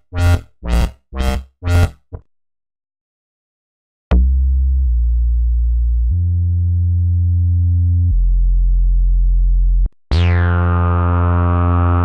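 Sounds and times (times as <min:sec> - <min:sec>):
low synth bass line: 0:00.0 - 0:02.2, 0:04.1 - 0:12.0.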